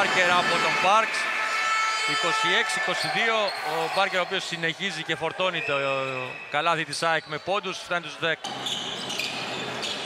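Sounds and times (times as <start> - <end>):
male commentator speaking: 0.0 - 1.3, 2.1 - 8.5.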